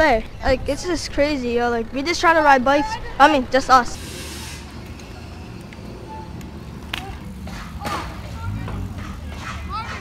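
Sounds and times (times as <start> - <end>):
low street rumble: 0.0 - 10.0.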